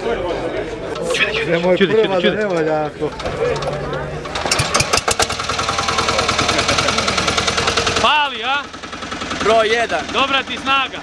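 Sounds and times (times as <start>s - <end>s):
tractor engine knocking: 3.1s - 11.0s
recoil rope pull-start: 4.4s - 11.0s.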